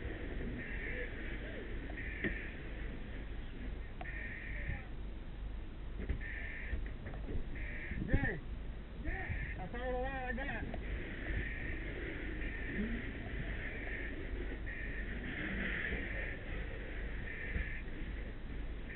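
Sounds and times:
steady low rumble: 0.0 - 18.9.

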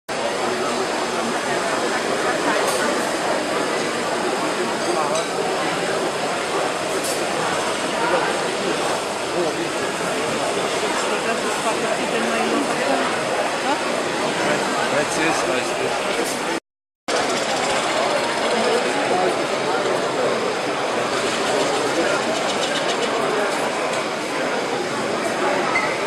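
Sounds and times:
crowd babble: 0.1 - 26.0.

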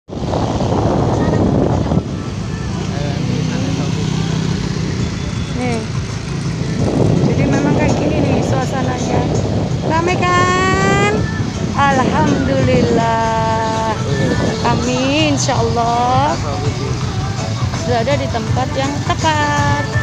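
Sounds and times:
road and wind noise: 0.1 - 20.0
motorcycle engine running: 0.2 - 20.0
voices of people: 0.9 - 20.0.

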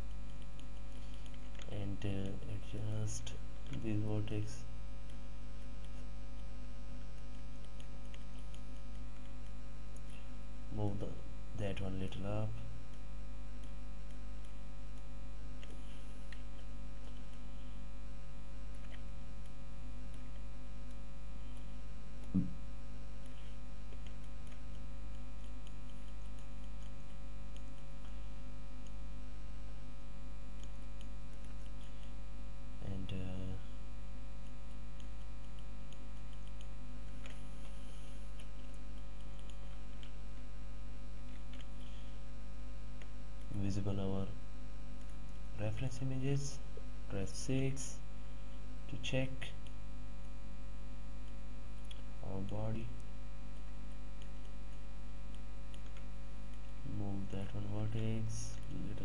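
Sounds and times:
electrical mains hum: 0.0 - 59.0
man speaking: 1.7 - 4.7, 10.7 - 12.6, 32.8 - 33.6, 43.5 - 44.4, 45.6 - 48.0, 49.0 - 49.6, 52.2 - 52.9, 56.9 - 59.0.

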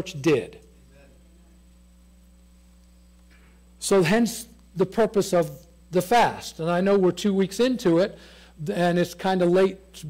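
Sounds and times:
faint electrical mains hum: 0.0 - 10.0.

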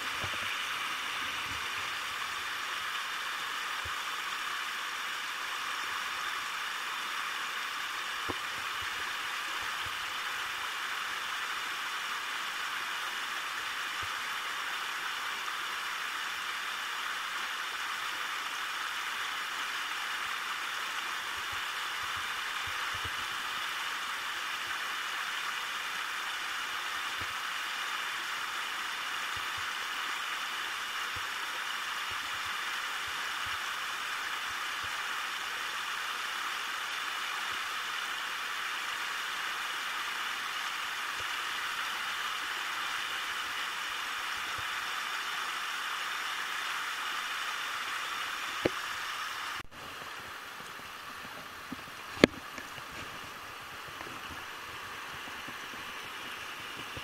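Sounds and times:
river water rushing: 0.0 - 57.0.

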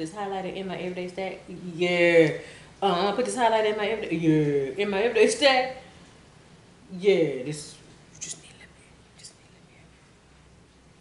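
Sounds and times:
faint low room hum: 0.0 - 11.0
soft whisper: 7.7 - 10.1.

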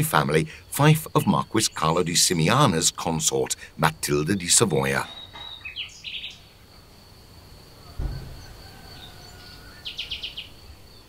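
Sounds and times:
high insect drone: 0.0 - 11.0
small birds chirping: 0.0 - 11.0
low bump: 7.8 - 9.5.

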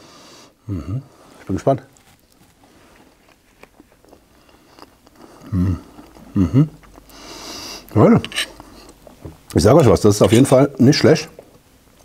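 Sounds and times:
man humming mhm: 0.6 - 1.2, 5.4 - 6.9
man chewing food: 1.1 - 9.6, 11.3 - 12.0.

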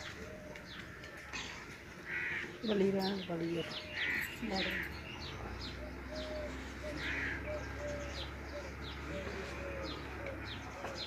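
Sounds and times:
bird caw: 0.0 - 2.7, 3.7 - 5.0, 6.1 - 8.6.

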